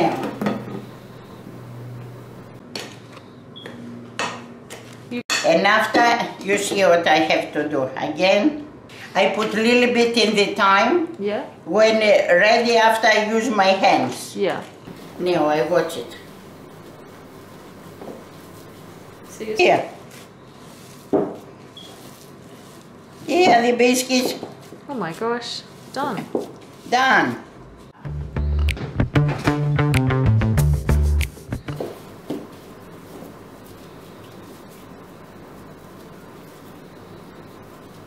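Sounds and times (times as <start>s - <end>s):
low steady hum: 0.0s - 3.4s, 14.8s - 20.9s.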